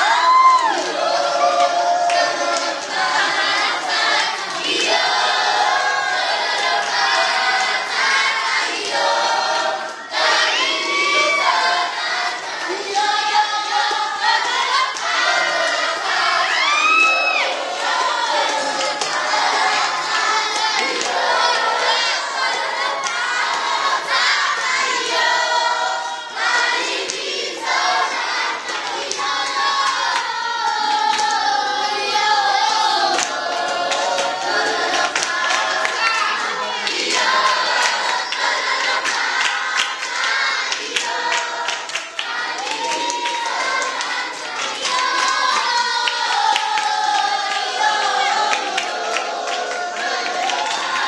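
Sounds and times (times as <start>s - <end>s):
children's choir singing: 0.0s - 51.0s.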